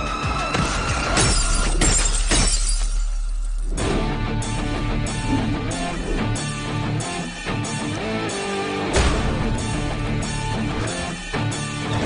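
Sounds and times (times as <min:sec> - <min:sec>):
film background score: 0:00.0 - 0:12.0
glass bottle shattering: 0:01.2 - 0:03.7.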